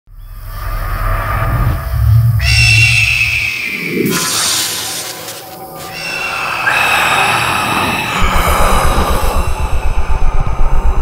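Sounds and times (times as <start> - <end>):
eerie screeching drone: 0.1 - 11.0.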